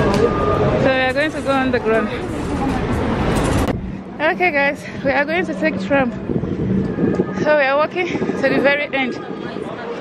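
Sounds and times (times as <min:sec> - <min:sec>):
traffic rumble and hiss: 0:00.0 - 0:09.1
faint voices: 0:00.0 - 0:10.0.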